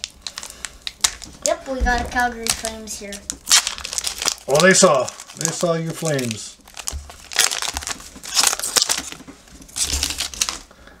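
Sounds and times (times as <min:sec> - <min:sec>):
foil wrapper crinkling: 0:00.0 - 0:10.8.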